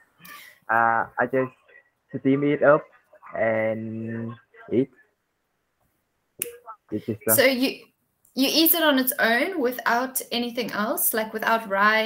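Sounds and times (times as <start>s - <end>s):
person speaking: 6.4s - 7.7s.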